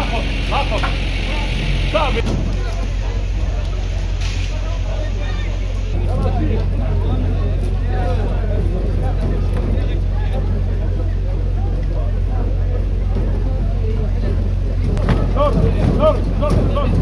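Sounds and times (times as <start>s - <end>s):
men talking and shouting: 0.0s - 17.0s
steady low rumble: 0.0s - 17.0s.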